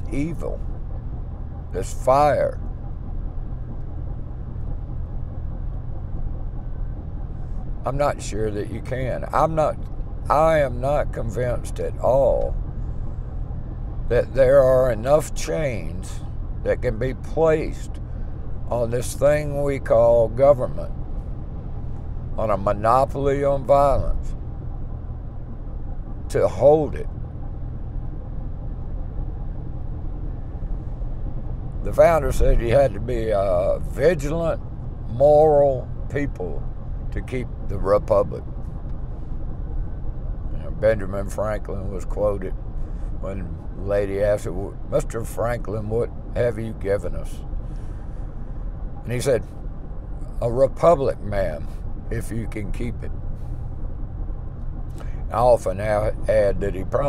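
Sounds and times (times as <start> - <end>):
car driving inside cabin: 0.0 - 57.0.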